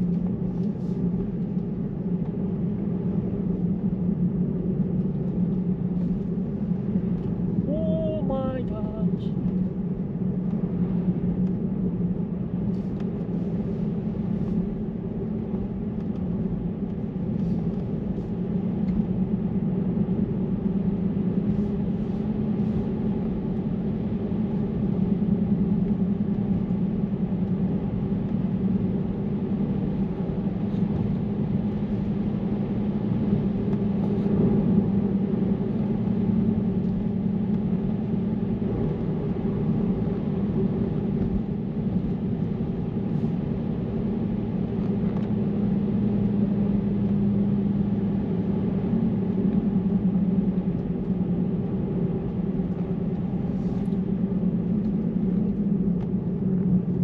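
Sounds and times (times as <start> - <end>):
road and tyre noise in car: 0.0 - 57.0.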